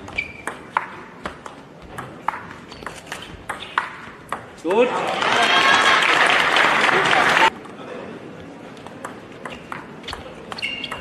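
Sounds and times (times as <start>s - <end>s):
brief squeak: 0.1s - 0.6s, 9.5s - 11.0s.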